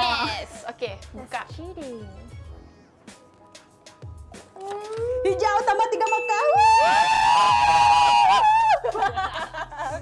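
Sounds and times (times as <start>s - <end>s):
women shrieking with joy: 6.6s - 9.1s.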